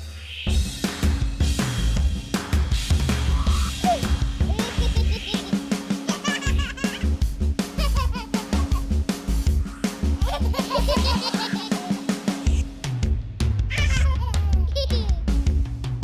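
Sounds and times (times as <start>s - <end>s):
drum kit playing fast beat: 0.0s - 16.0s
baby giggling: 3.4s - 7.1s, 7.8s - 8.9s, 10.2s - 12.1s, 13.7s - 15.3s.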